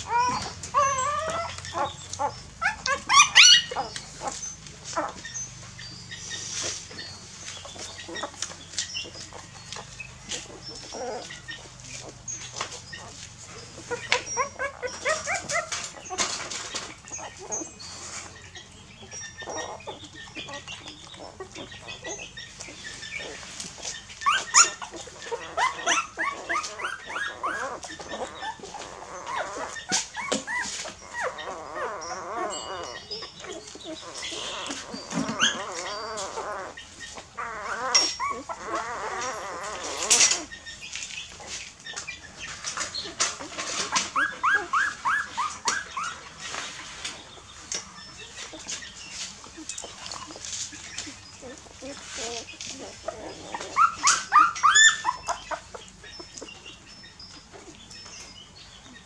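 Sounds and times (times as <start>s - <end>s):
squeaky puppy whimpers: 0.0s - 23.4s, 24.0s - 40.8s, 43.0s - 46.4s, 49.5s - 58.0s
puppies suckling: 0.0s - 58.0s.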